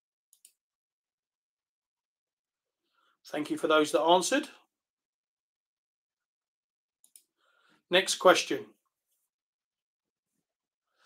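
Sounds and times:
man speaking: 0:03.3 - 0:04.6, 0:07.9 - 0:08.7.

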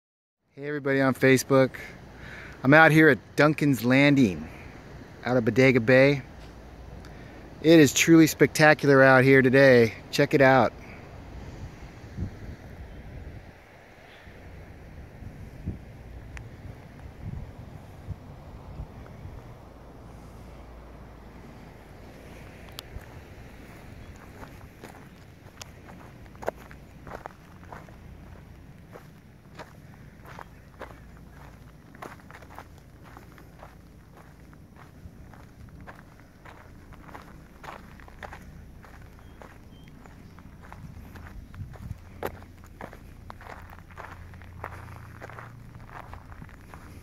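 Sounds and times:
low rumble: 0:14.2 - 0:47.0
footsteps crunching on dirt: 0:21.7 - 0:47.0.

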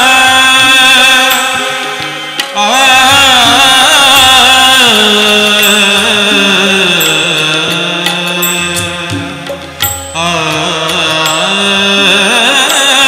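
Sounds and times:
hand drum keeping time: 0:00.0 - 0:13.0
harmonium sustained notes: 0:00.0 - 0:13.0
violin and keyboard melody: 0:00.0 - 0:13.0.

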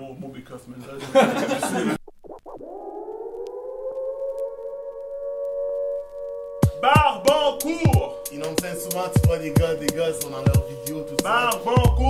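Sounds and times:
sustained synthesizer tone: 0:02.2 - 0:12.0.

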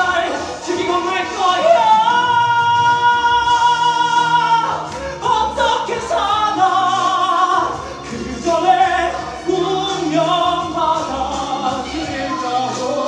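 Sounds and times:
orchestral backing track: 0:00.0 - 0:13.0
person singing: 0:00.0 - 0:13.0.

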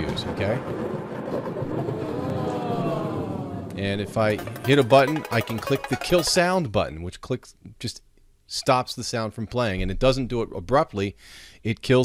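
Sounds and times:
gliding multi-tone sound effect: 0:03.8 - 0:06.6.

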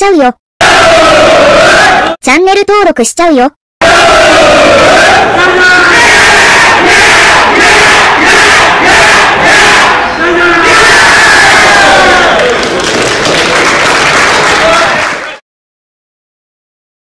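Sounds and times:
children shouting a team chant: 0:00.6 - 0:02.2, 0:03.8 - 0:12.5.

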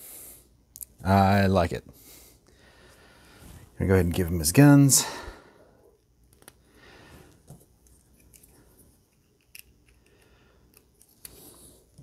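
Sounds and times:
soft handling noise: 0:02.9 - 0:04.8, 0:06.0 - 0:12.0.

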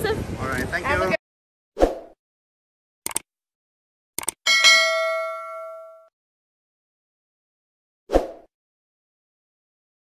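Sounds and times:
quick clicks: 0:03.0 - 0:03.3, 0:04.2 - 0:04.4
bell ding: 0:04.5 - 0:06.1.

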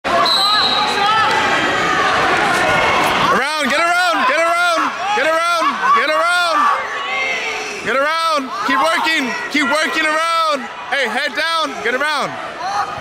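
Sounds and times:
crowd chatter echoing: 0:00.0 - 0:13.0.

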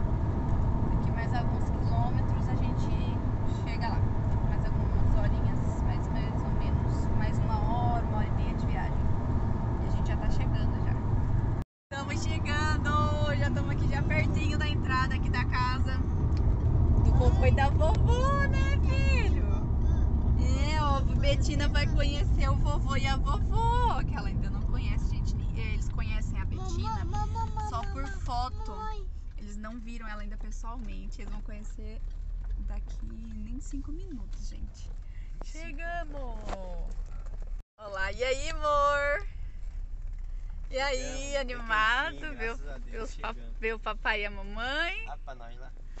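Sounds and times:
car cabin road rumble: 0:00.0 - 0:46.0
voices talking: 0:17.0 - 0:19.8, 0:20.4 - 0:32.0, 0:37.8 - 0:39.2, 0:40.7 - 0:45.7.

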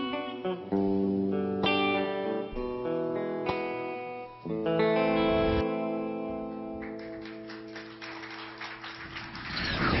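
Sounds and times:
electric guitar with effects: 0:00.0 - 0:07.4
rush of noise: 0:09.1 - 0:10.0.

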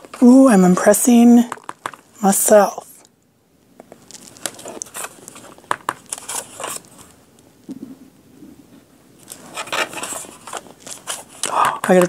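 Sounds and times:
paper rustling: 0:03.9 - 0:07.2, 0:09.2 - 0:12.0.

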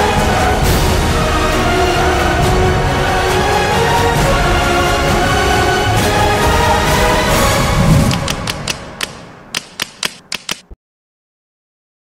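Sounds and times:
background music: 0:00.0 - 0:10.6
typewriter key clicks: 0:08.1 - 0:10.8.

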